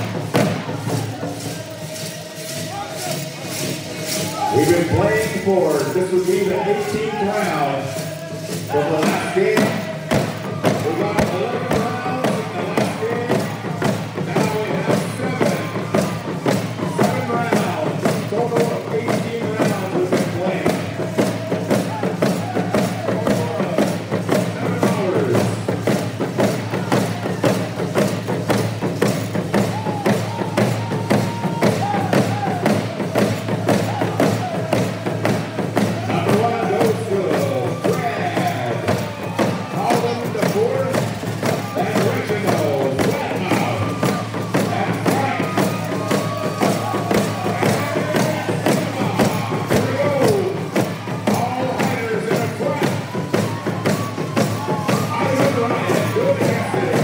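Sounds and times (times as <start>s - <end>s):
frame drums beating: 0.0s - 57.0s.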